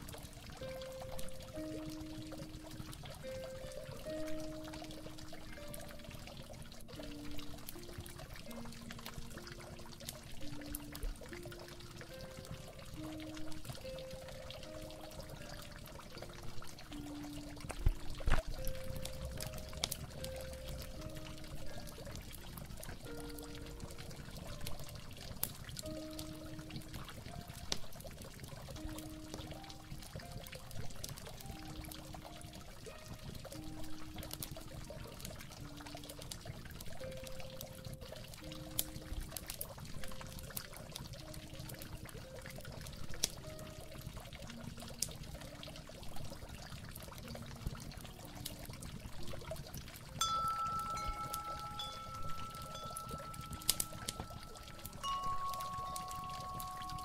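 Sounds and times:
water trickling and pouring: 0.0 - 57.0
mellow harp melody: 50.2 - 57.0.

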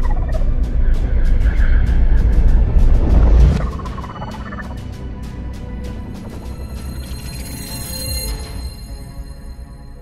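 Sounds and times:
low rumble: 0.0 - 7.0.

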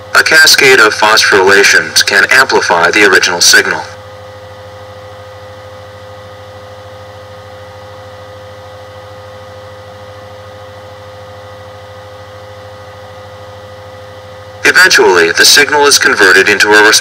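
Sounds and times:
electrical hum and hiss: 0.0 - 17.0
mid-pitched whine: 0.0 - 17.0.

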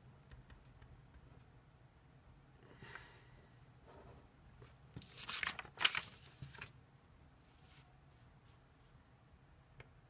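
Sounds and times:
paper rustling and sliding: 5.0 - 6.8.

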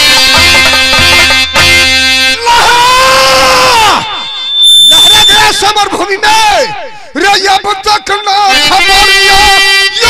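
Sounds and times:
stage folk music: 0.0 - 5.0
man's long high cry: 2.4 - 4.2.

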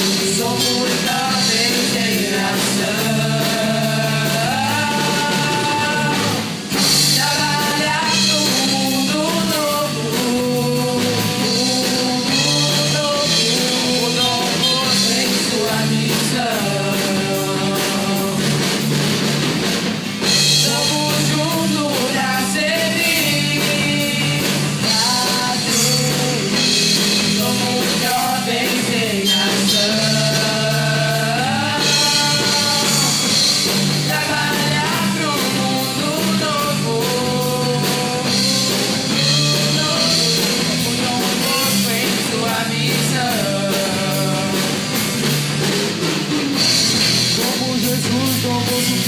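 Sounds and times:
people singing: 0.0 - 18.7, 20.3 - 44.9
drum kit: 0.0 - 49.0
electric bass: 0.0 - 49.0
electric guitar: 0.0 - 49.0
live pop-rock band: 0.0 - 49.0.

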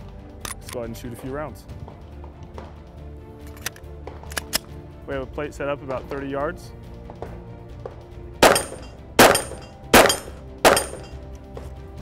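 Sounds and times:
background music: 0.0 - 12.0
pistol shots: 8.4 - 11.2.

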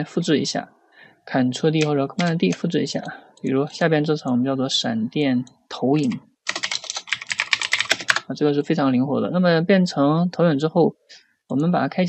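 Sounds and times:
computer keyboard typing: 1.8 - 4.4, 6.0 - 8.3.

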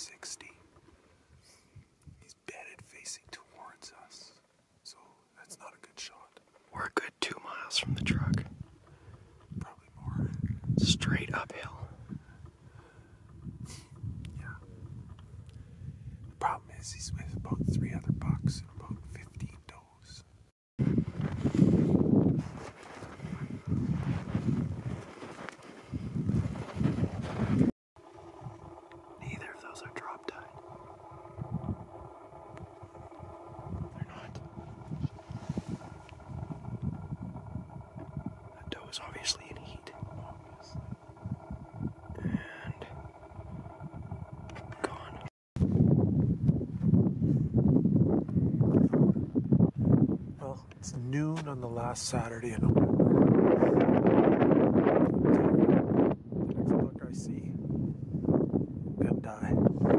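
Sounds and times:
low whispered voices: 0.0 - 0.6, 16.4 - 20.2, 28.6 - 45.3
wind buffeting microphone: 7.8 - 19.8, 20.8 - 59.9
steady multi-tone hum: 28.0 - 45.3.

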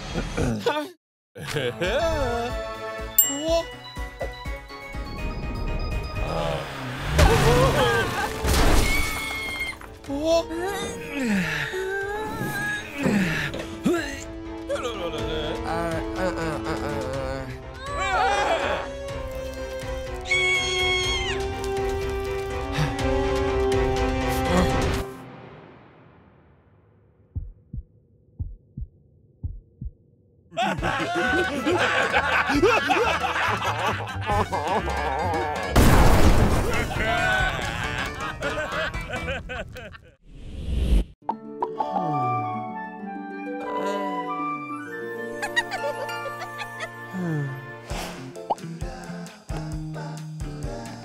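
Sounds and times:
music: 1.4 - 26.4, 30.6 - 36.1, 36.7 - 39.4, 41.2 - 51.0
cartoon crash and shattering: 7.1 - 9.5, 35.8 - 37.3
heartbeat thumps: 27.3 - 30.0.

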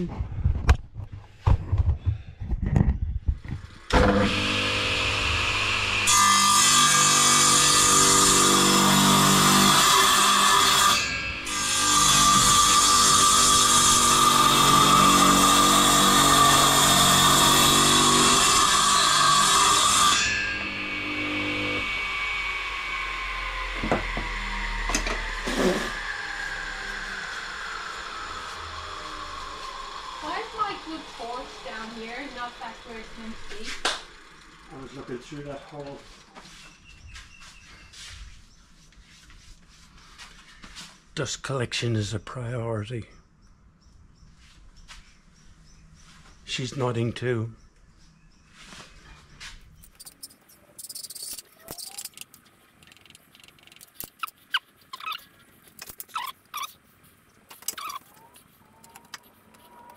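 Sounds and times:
saw motor starting: 3.5 - 36.0
saw blade cutting wood: 3.9 - 35.9, 50.0 - 59.9
saw blade winding down whine: 3.9 - 35.9.

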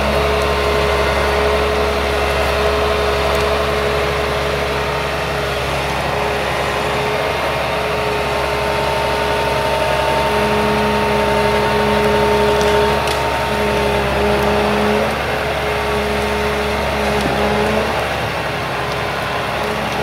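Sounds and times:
diesel engine running: 0.0 - 20.0
hydraulic whine: 0.0 - 20.0.

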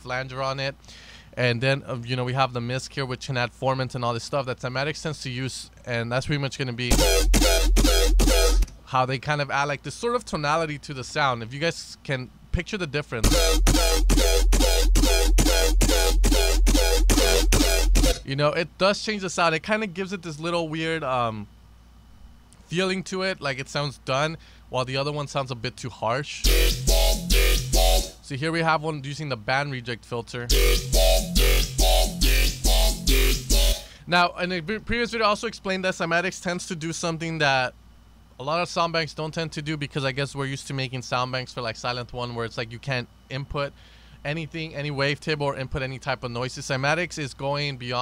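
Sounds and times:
wobbling dubstep bass: 6.9 - 8.7, 13.2 - 18.2, 26.4 - 28.2, 30.5 - 33.9.

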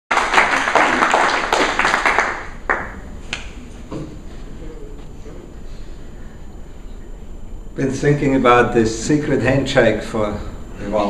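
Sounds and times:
small group applauding: 0.1 - 3.6.

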